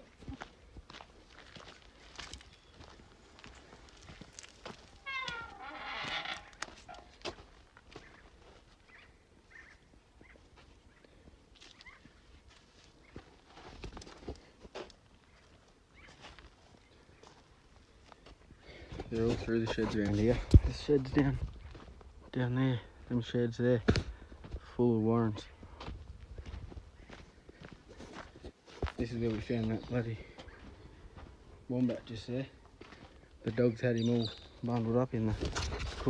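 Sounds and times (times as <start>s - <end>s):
footsteps on dirt and leaves: 0.0s - 23.2s, 23.8s - 36.0s
animal call: 4.8s - 7.2s.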